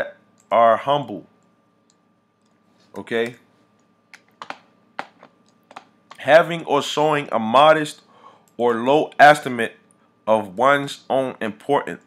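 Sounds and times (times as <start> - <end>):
keyboard and mouse clicks: 3.2 - 6.2.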